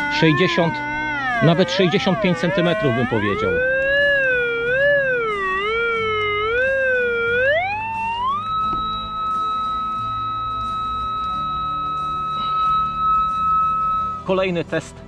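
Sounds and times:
metal detector wavering tone: 0.0s - 14.3s.

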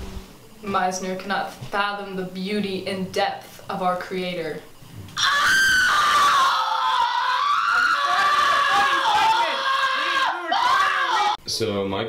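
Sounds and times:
person screaming: 5.2s - 11.4s.

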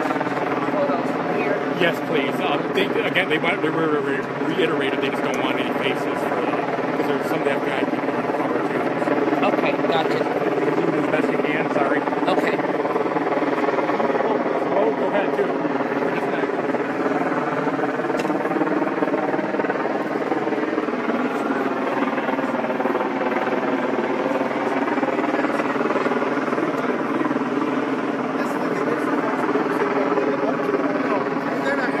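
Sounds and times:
steady motor drone: 0.0s - 32.0s.

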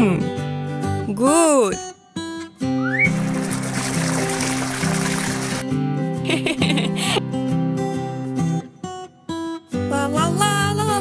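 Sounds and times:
cartoon water sprinkling hiss: 3.1s - 5.6s.

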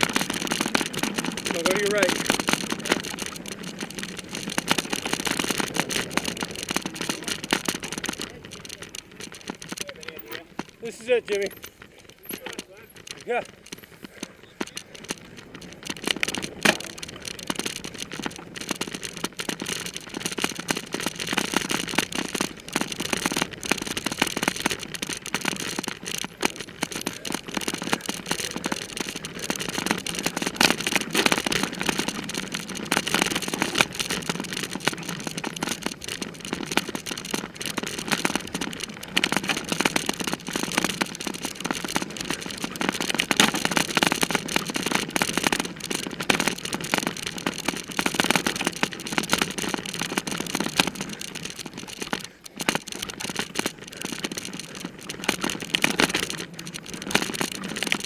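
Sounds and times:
bicycle rattling: 0.0s - 58.0s
tyre noise on dirt: 0.0s - 58.0s.

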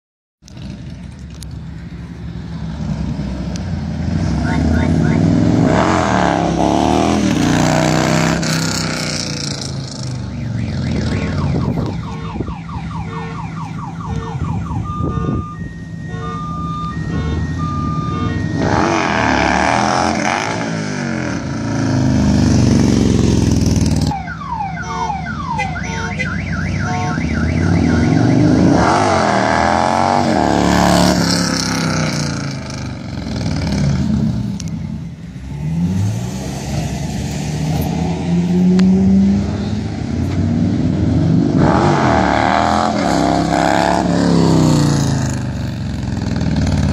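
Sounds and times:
motorcycle engine revving: 2.7s - 12.3s, 16.0s - 24.2s, 25.6s - 34.7s, 35.4s - 46.9s
car alarm beeping and chirping: 10.2s - 19.1s, 24.1s - 29.1s.

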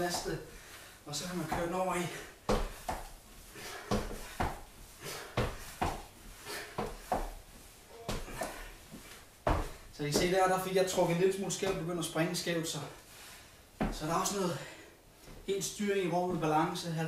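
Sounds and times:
feet thudding on wooden floor: 1.4s - 11.9s, 13.8s - 14.2s.

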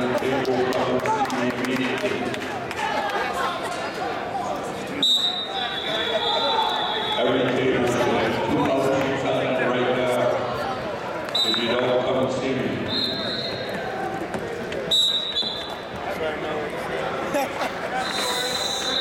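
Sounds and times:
voices in a hall: 0.0s - 19.0s
referee whistle blasts: 5.0s - 7.3s, 12.9s - 13.7s, 14.9s - 15.7s, 18.0s - 19.0s.

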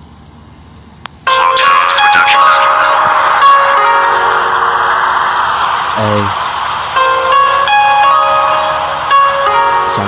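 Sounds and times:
music with chime-like notes: 7.0s - 10.0s.

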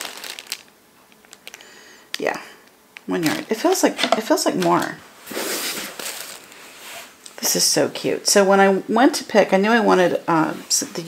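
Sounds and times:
plastic bag rustling: 0.0s - 1.7s, 3.1s - 7.2s.

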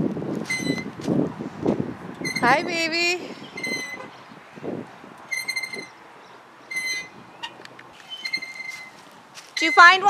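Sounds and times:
playground swing squeaking: 0.4s - 0.9s, 2.2s - 2.7s, 3.4s - 4.2s, 5.3s - 6.0s, 6.6s - 10.0s.

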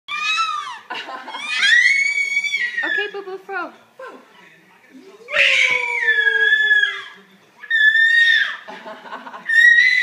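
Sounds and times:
baby squealing: 0.1s - 3.0s, 5.3s - 8.7s, 9.5s - 10.0s.

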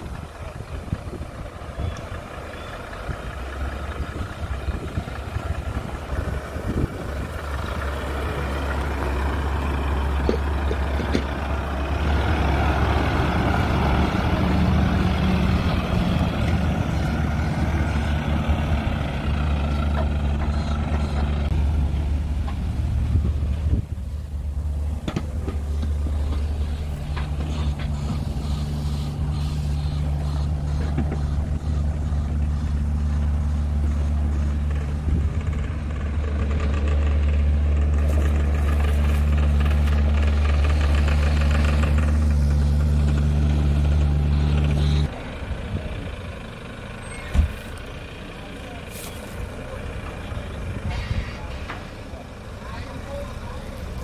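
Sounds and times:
diesel engine idling: 0.0s - 54.0s.

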